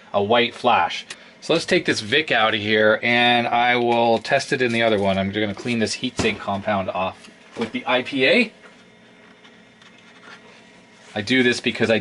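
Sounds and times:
paper towel rubbing on chip: 10.1 - 12.0.

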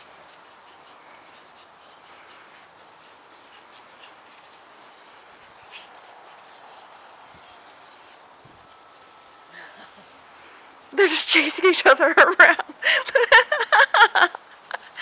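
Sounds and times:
outdoor background hiss: 0.0 - 15.0.

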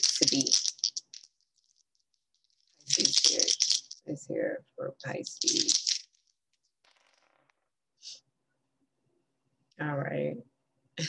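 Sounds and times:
woman speaking: 0.0 - 0.6, 2.9 - 5.8, 9.8 - 10.4.

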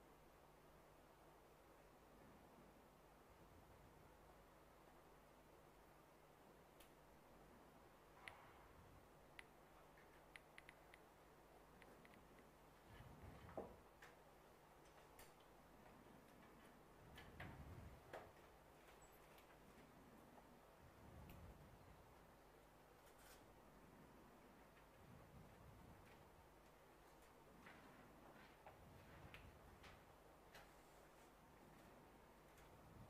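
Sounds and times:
light irregular ticks: 6.7 - 7.1, 8.2 - 8.5, 9.2 - 20.6, 21.2 - 22.4, 23.0 - 33.0
soft sharp clicks: 8.2 - 8.6, 9.3 - 12.6.

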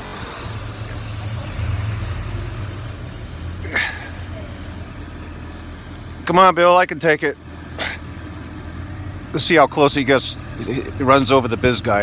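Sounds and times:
snow-clearing tractor engine: 0.0 - 12.0.

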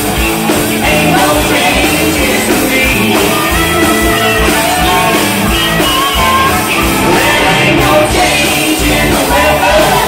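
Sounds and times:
drum kit beat: 0.0 - 10.0
electric guitars: 0.0 - 10.0.

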